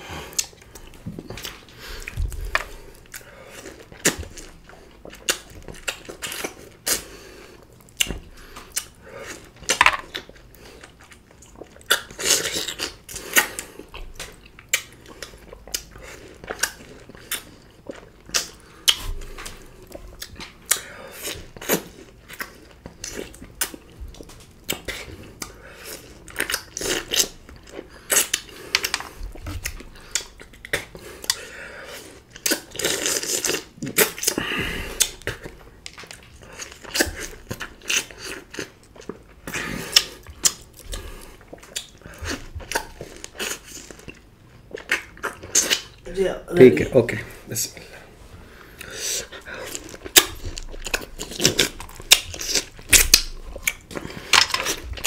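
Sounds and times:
wet chewing and sucking: 0:00.2 - 0:46.0, 0:47.8 - 0:55.0.

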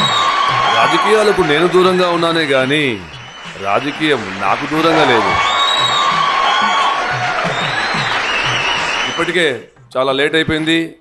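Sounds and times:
applause and cheering: 0:00.0 - 0:09.6
music playing: 0:00.0 - 0:11.0.

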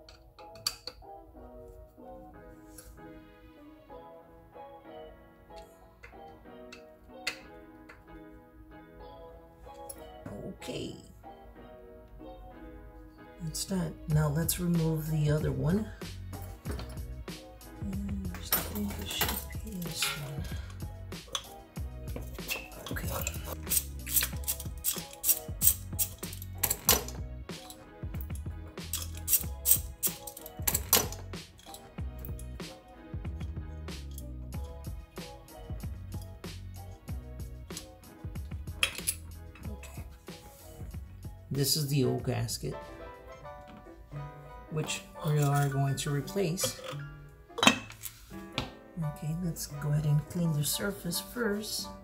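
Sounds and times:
background music: 0:00.0 - 0:52.0
hand tools clinking on metal: 0:18.4 - 0:20.6, 0:22.3 - 0:32.5, 0:38.8 - 0:40.1, 0:45.2 - 0:47.0.

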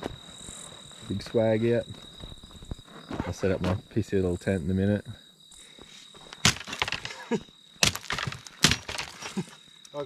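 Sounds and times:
crickets chirping: 0:00.0 - 0:10.0
hatchet chopping wood: 0:06.4 - 0:07.2, 0:07.8 - 0:09.4.

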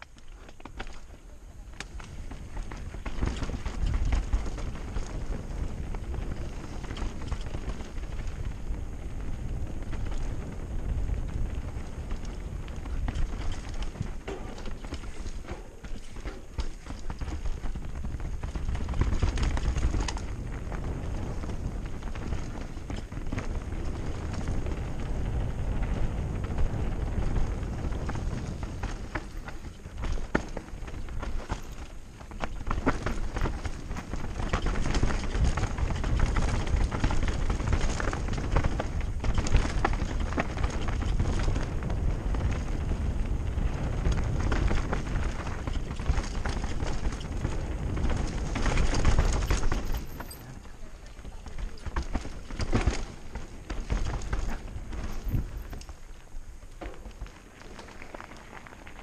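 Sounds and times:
bike tyres rolling over dirt: 0:00.0 - 0:59.0
wind rumble on microphone: 0:00.0 - 0:59.0.

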